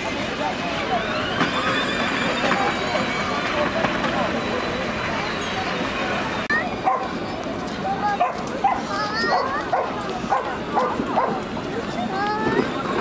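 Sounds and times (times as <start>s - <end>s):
people's voices: 0.0s - 13.0s
dog barking and yipping: 6.8s - 7.2s, 8.2s - 11.4s.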